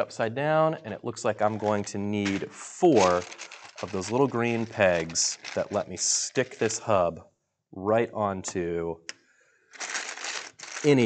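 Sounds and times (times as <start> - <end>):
plastic pieces rattling in tray: 1.5 - 6.8, 9.8 - 11.0.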